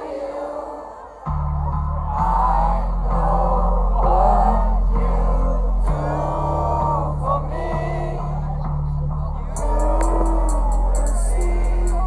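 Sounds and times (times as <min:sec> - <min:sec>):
sung melodic vocal: 0:00.0 - 0:12.0
deep sustained bass line: 0:01.3 - 0:12.0.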